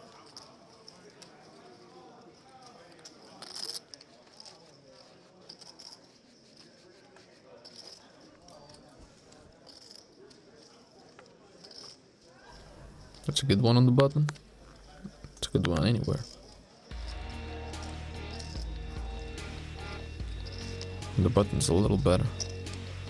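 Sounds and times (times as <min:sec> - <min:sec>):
murmur of distant voices: 0:00.0 - 0:13.5, 0:14.1 - 0:19.4
poker chips clicking: 0:02.6 - 0:12.0, 0:14.0 - 0:23.0.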